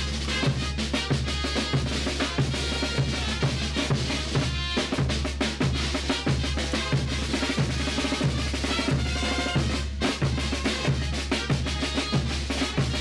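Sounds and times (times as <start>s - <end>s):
bass drum and snare beat: 0.0s - 13.0s
brass band playing: 0.0s - 13.0s.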